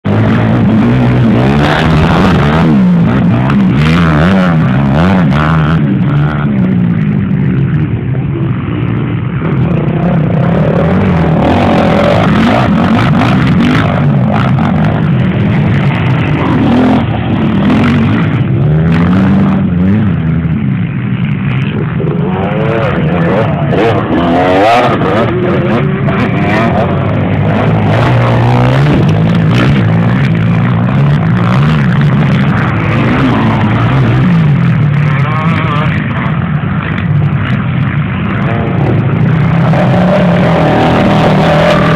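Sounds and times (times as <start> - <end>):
motorcycle engines revving: 0.0 - 41.9.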